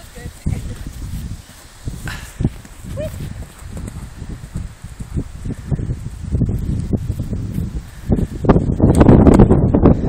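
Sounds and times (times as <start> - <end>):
horse hoofbeats on grass: 0.0 - 7.9
wind rumble on microphone: 0.0 - 10.0.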